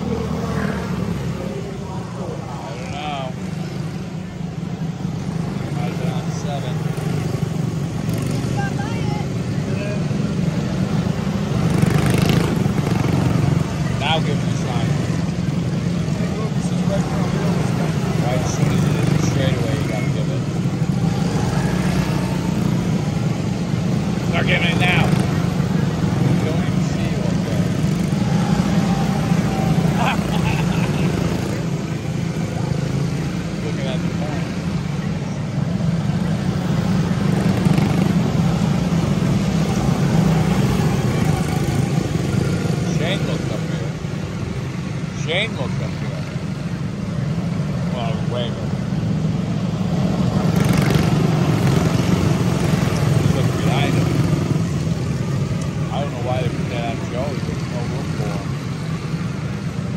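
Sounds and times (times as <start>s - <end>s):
race car engines droning: 0.0s - 59.9s.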